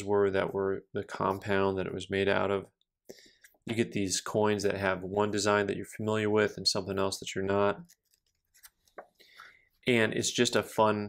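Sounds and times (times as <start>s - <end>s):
book pages turning: 7.7s - 9.2s.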